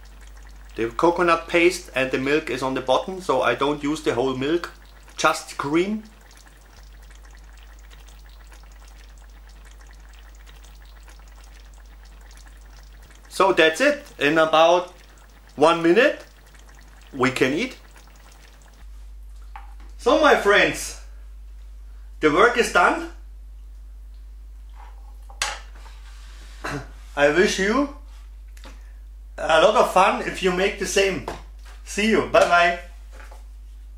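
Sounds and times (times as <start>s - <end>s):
low steady hum: 0.0s - 19.5s.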